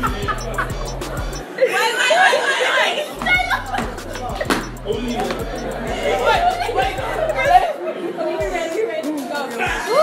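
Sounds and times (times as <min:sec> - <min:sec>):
music with bass beat: 0:00.0 - 0:01.4, 0:03.2 - 0:07.6
young people chattering: 0:00.0 - 0:10.0.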